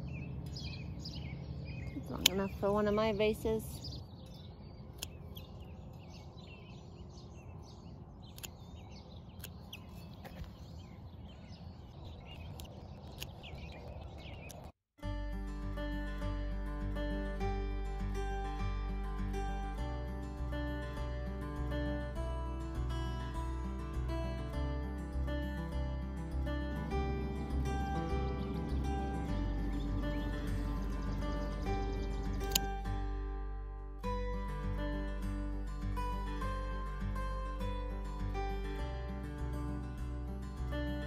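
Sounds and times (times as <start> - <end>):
low outdoor rumble: 0.0 - 9.4, 23.9 - 41.0
birds chirping: 0.0 - 14.8, 17.3 - 33.2.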